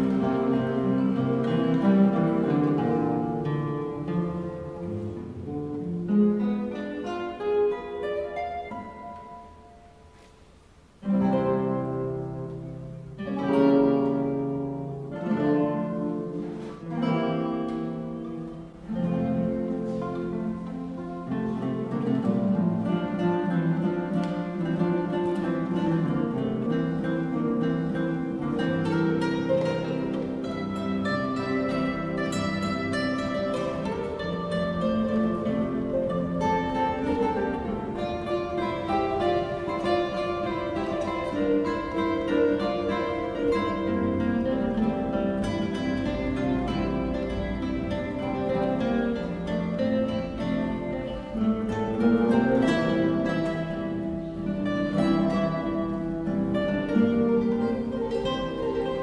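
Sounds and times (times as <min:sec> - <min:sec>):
classical guitar ensemble playing: 0:00.0 - 0:59.0.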